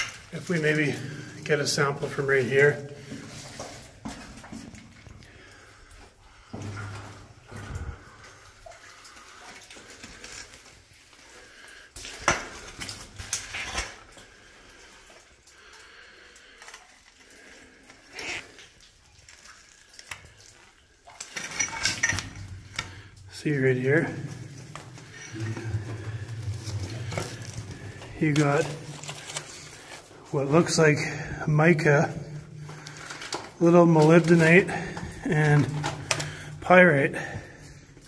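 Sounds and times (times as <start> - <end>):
rocks clinking and scraping: 0.0 - 15.3, 16.2 - 38.0.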